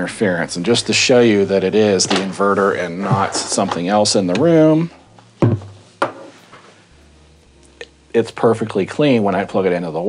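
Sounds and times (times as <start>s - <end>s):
amplifier hiss and hum: 0.0s - 10.0s.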